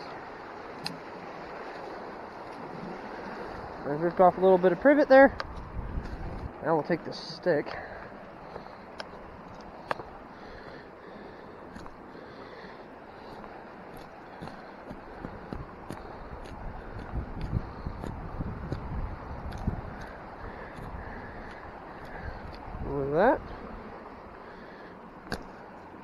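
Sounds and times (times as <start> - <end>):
outdoor background hiss: 0.0 - 26.0
wind on microphone: 5.3 - 6.7, 14.4 - 24.0.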